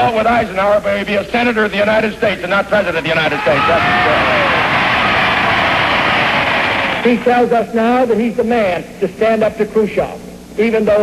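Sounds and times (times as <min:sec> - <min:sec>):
large audience applauding: 0:03.4 - 0:07.3.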